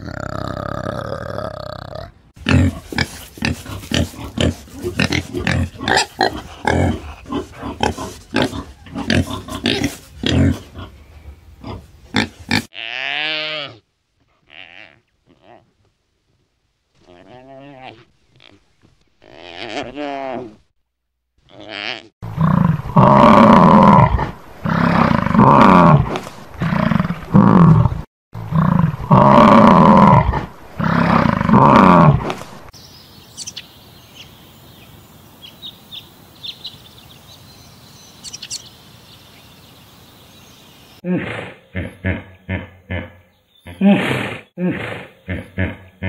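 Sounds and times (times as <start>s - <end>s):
hippo grunting: 0.0s - 11.0s, 21.5s - 32.5s, 41.0s - 46.0s.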